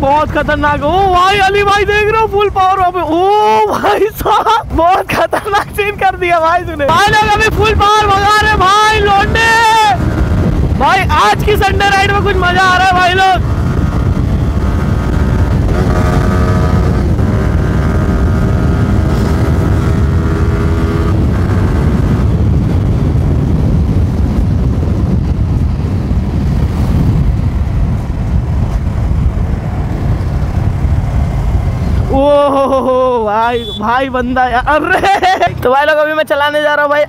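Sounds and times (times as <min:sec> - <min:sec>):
wind rushing over microphone: 0:00.0 - 0:37.0
motorcycle engine steady note: 0:13.4 - 0:34.4.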